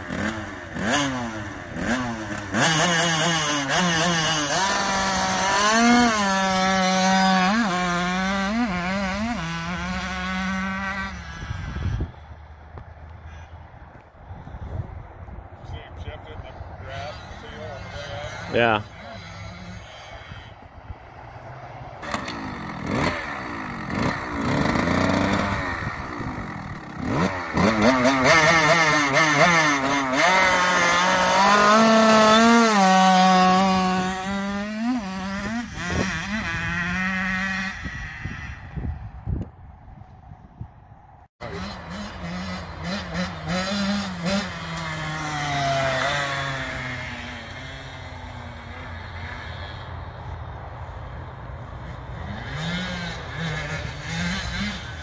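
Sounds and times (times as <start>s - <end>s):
dirt bike engine revving: 0.0s - 12.8s, 15.8s - 39.3s, 41.4s - 55.0s.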